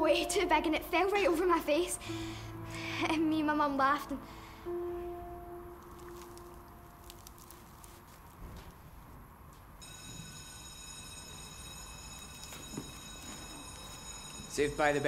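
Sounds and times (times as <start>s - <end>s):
electric school bell ringing: 9.8s - 15.0s.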